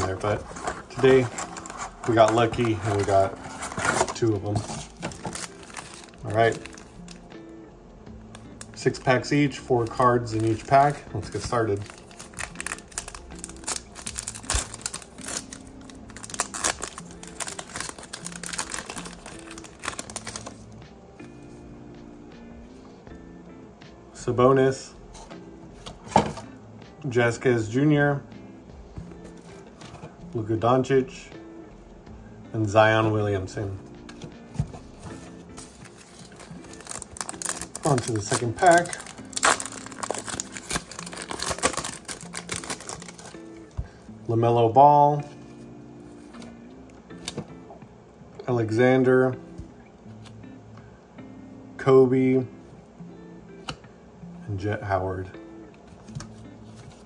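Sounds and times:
quiet background music: 0.0 - 57.0
foil pack tearing and crinkling: 0.1 - 7.1, 11.8 - 20.6, 35.9 - 43.4.

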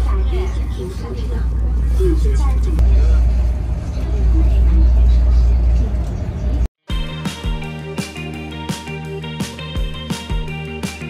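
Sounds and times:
indistinct passenger voices: 0.0 - 6.7.

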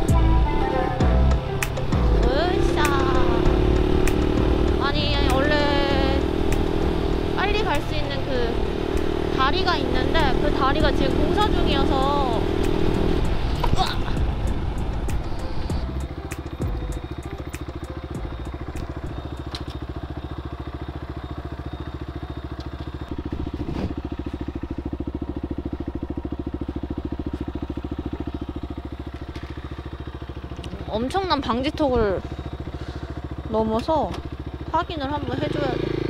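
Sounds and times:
motorcycle engine idling: 0.0 - 36.0
person crying out: 13.6 - 14.2.

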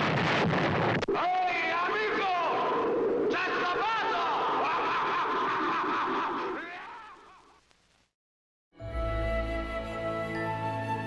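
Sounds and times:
person laughing: 4.7 - 6.6.

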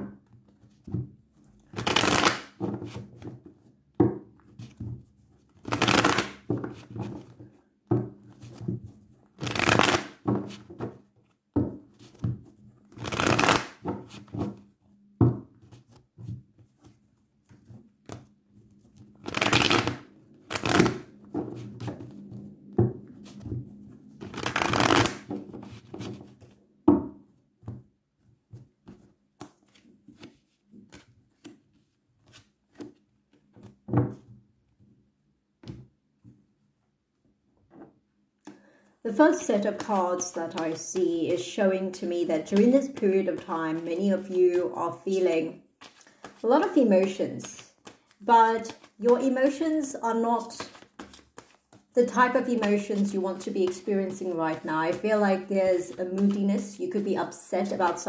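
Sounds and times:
cards being shuffled: 0.5 - 3.5, 5.5 - 7.6, 9.3 - 11.3, 11.9 - 14.6, 15.6 - 26.6, 28.5 - 34.2, 39.3 - 49.4, 50.4 - 58.0
cards clicking and tapping: 11.6 - 14.5, 15.3 - 23.6, 24.2 - 26.6, 28.8 - 31.6, 45.8 - 46.4, 47.0 - 49.3, 50.5 - 56.7.

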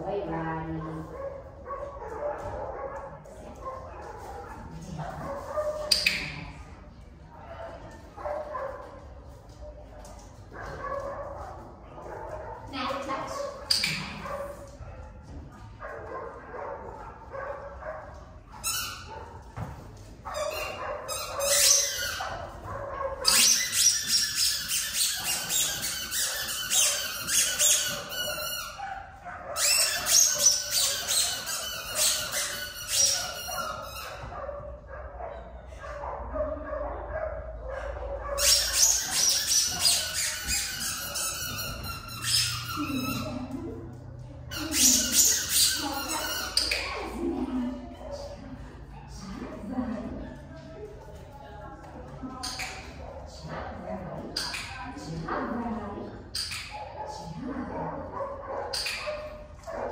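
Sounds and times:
dog yipping: 13.3 - 15.1, 20.3 - 34.6, 36.0 - 43.6, 44.5 - 47.1.

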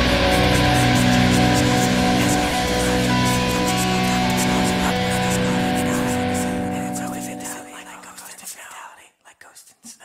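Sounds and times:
rock chord ringing: 0.0 - 7.9
person speaking quietly: 0.1 - 10.0.

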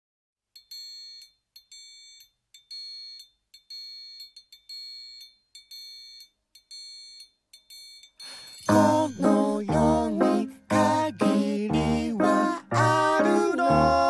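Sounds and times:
high bell-like ringing tone: 0.6 - 9.8.

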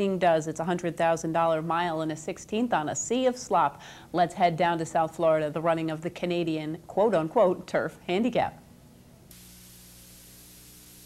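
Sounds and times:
faint steady hiss: 1.7 - 11.0
electrical hum: 8.5 - 11.0.

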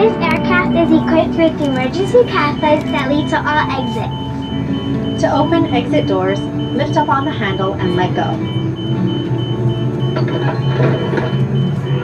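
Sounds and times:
airplane cabin drone: 0.0 - 12.0
pulsing high tone: 0.0 - 12.0.

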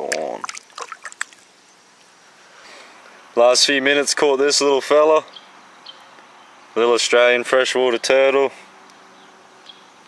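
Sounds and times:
river flowing: 0.0 - 2.3.

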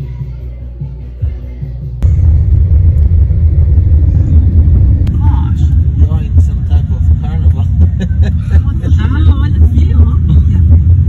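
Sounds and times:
car driving rumble from inside: 2.0 - 11.0.

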